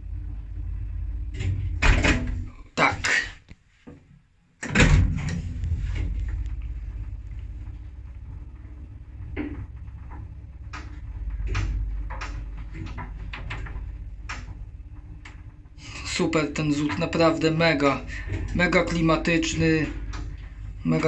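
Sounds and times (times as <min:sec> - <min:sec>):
lift machinery hum and rumble: 0:00.0 - 0:03.9, 0:04.6 - 0:21.0
heavy clunk of lift starting: 0:01.3 - 0:02.6, 0:04.6 - 0:06.8.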